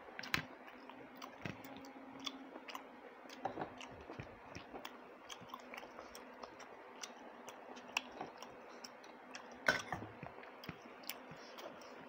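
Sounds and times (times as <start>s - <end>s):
person chewing wetly: 0.1s - 12.0s.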